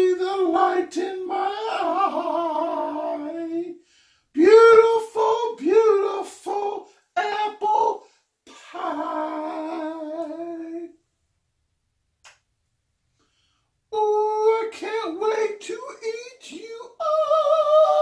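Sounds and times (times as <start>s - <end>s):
man singing loudly: 0.0s - 3.8s, 4.4s - 11.0s, 14.0s - 18.0s.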